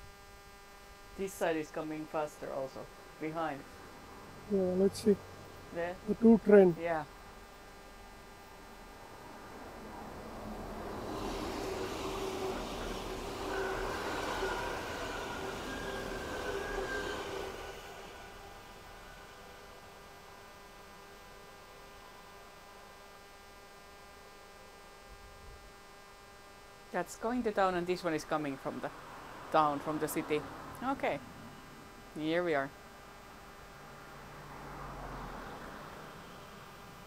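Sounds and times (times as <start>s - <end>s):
electric train passing: 1.2s - 23.0s, 27.0s - 37.0s.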